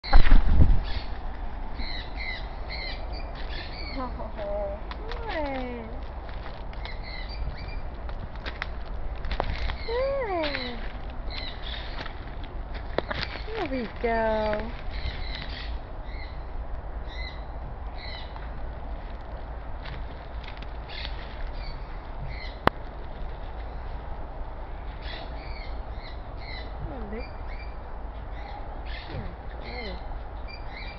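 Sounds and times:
steady low rumble: 0:00.0 - 0:30.9.

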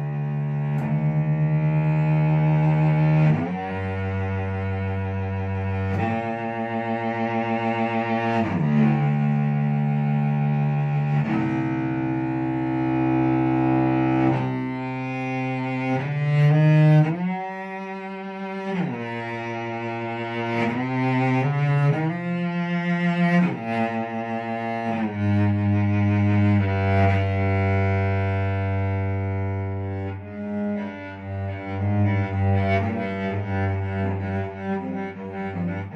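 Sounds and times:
bowed cello: 0:00.0 - 0:35.9.

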